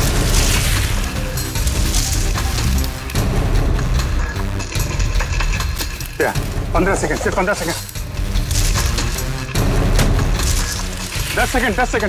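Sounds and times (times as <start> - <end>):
dramatic music with booming hits: 0.0 - 12.0.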